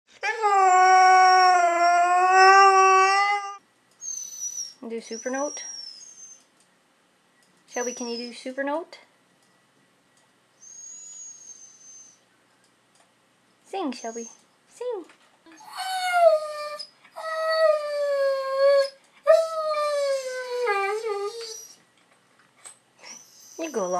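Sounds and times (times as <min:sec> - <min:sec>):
dog howling: 0:00.2 - 0:03.6, 0:15.5 - 0:21.8.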